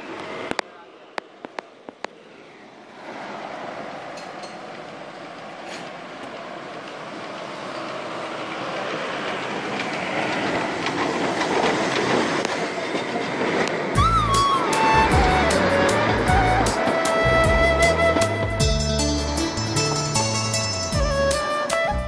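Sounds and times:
steam locomotive running: 0.0s - 22.0s.

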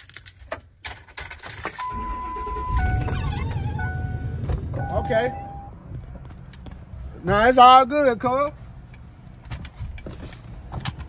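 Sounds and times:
car keys jangling: 0.0s - 5.7s
car engine starting and running: 1.8s - 7.0s
steady electronic tone: 1.9s - 5.8s.

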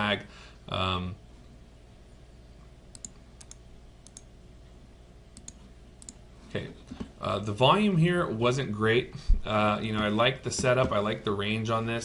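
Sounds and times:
low electrical hum: 0.0s - 12.0s
computer mouse clicks: 2.9s - 4.3s, 5.4s - 6.2s.

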